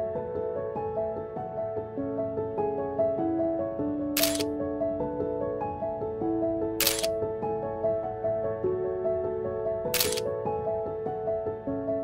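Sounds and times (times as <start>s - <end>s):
camera shutter clicks: 4.2s - 4.5s, 6.8s - 7.1s, 10.0s - 10.2s.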